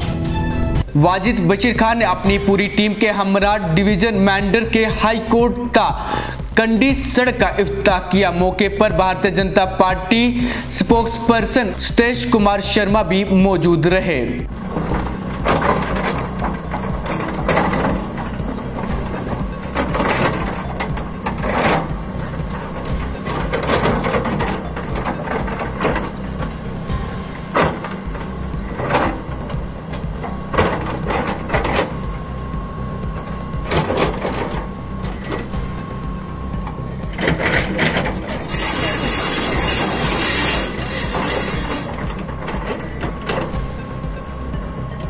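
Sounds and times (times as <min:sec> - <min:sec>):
excavator diesel engine running: 0:00.0 - 0:45.0.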